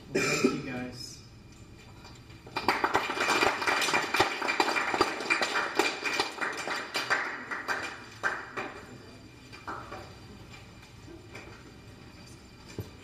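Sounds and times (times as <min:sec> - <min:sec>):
small audience clapping: 0:02.4 - 0:10.0.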